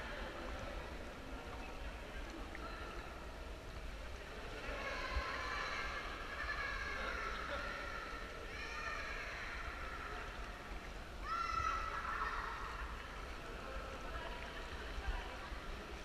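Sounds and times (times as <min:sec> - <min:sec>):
murmur of voices: 0:00.0 - 0:16.0.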